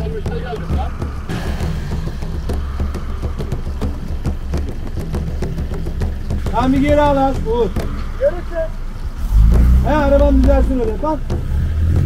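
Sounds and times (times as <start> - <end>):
hissing wash of noise: 0.0 - 10.2
vehicle engine running at low revs: 0.0 - 12.0.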